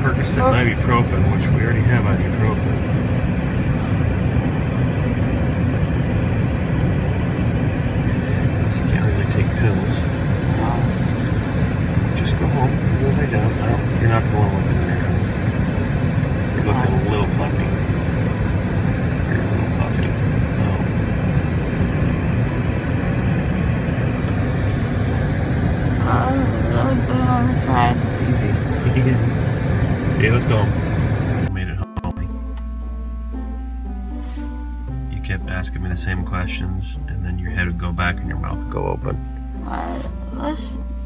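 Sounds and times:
car engine idling: 0.0 - 41.0.

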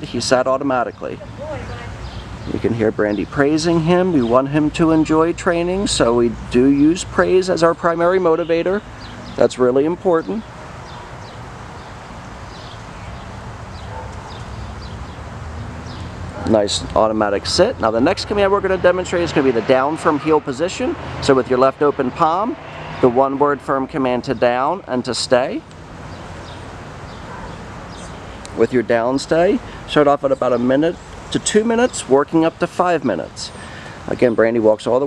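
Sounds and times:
small birds chirping: 0.0 - 21.3, 24.2 - 35.0.

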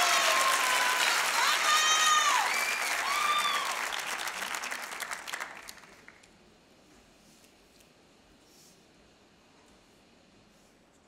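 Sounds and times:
people whooping: 0.0 - 4.4
audience applauding: 0.0 - 6.3.

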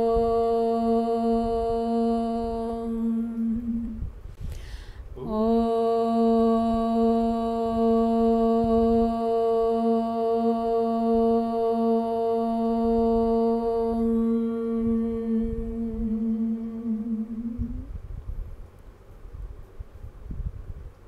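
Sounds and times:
voices chanting om: 0.0 - 18.0.

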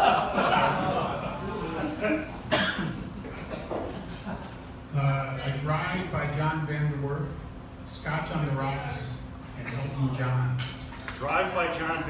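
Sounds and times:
person coughing: 2.1 - 3.8.

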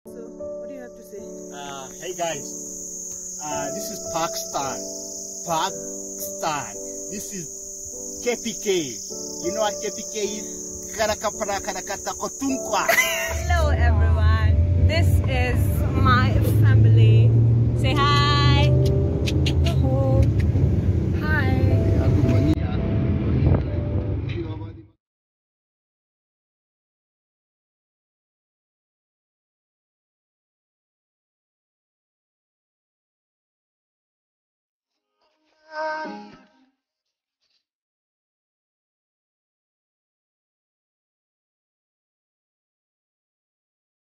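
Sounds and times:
insects chirring: 0.1 - 19.7
people shouting and laughing: 12.8 - 13.8
van engine and tyres rumbling: 13.3 - 24.8.

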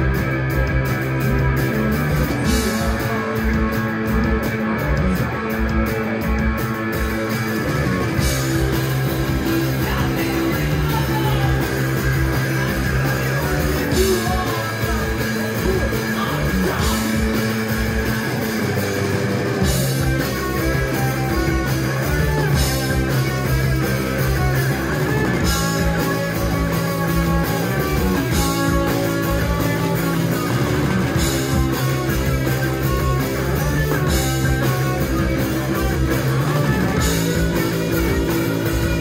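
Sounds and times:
bass: 0.0 - 39.0
drums: 0.0 - 39.0
electric guitar: 0.0 - 39.0.

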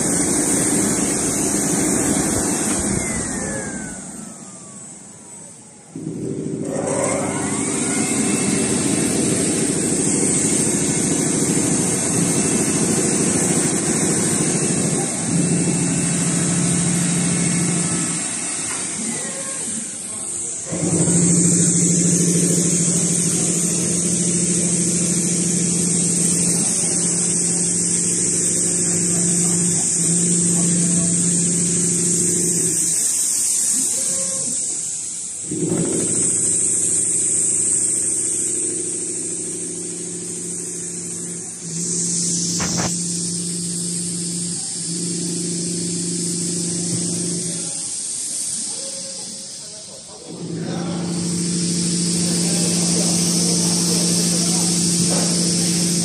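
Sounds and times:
sewing machine running: 0.0 - 47.8, 50.3 - 56.0.

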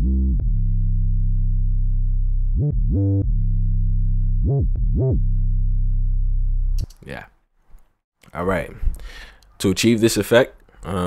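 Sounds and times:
sliding sub-bass notes: 0.0 - 6.9.

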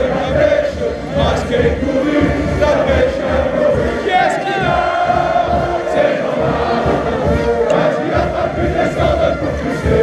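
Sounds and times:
crowd singing in chorus: 0.0 - 10.0.

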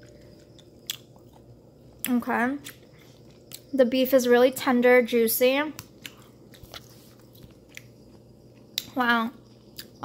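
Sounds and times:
person chewing: 0.0 - 3.7, 5.8 - 10.0.

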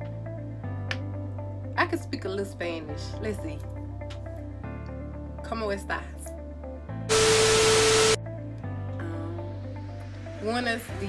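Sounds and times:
soft background music: 0.0 - 11.0
steady beep tone: 7.1 - 8.2
tv static hiss: 7.1 - 8.2.

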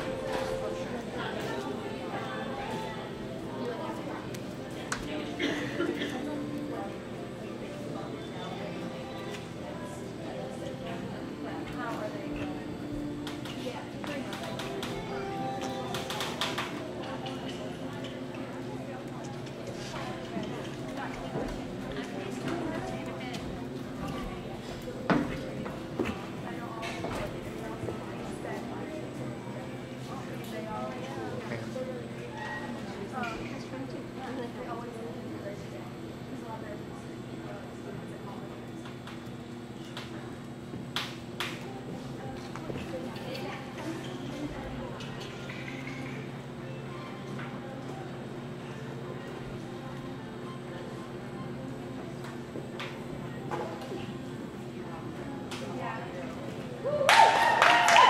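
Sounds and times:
indistinct voices chattering: 0.0 - 58.0.

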